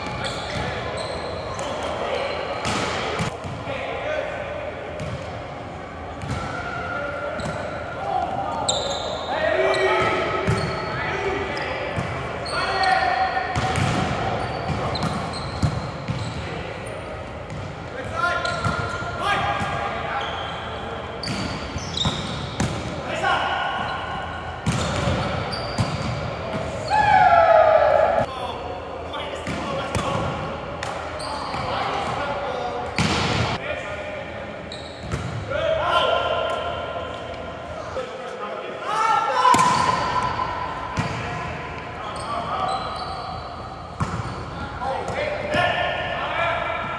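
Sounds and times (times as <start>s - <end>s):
players calling and shouting: 0.0s - 46.9s.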